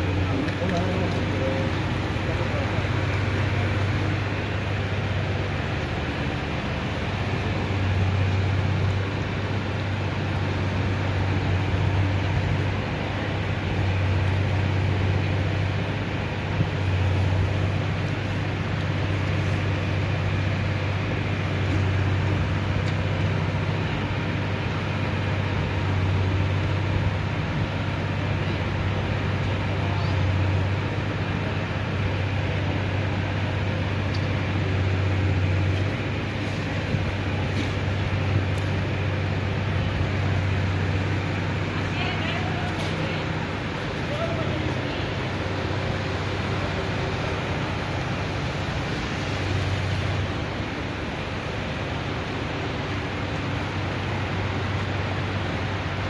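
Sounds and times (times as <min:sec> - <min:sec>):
floodwater rushing: 0:00.0 - 0:56.0.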